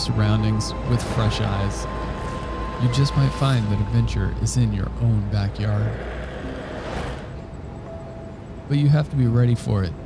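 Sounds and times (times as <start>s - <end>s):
rush of noise: 0.0s - 8.7s
low steady rumble: 0.0s - 10.0s.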